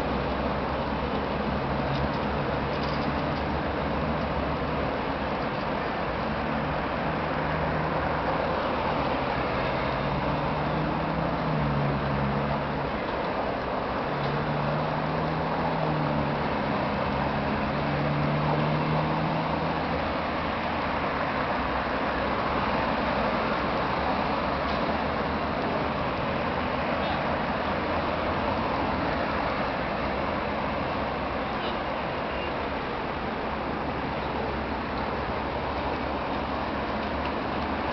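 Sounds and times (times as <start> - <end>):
city traffic noise: 0.0 - 37.9
low engine hum: 0.0 - 37.9.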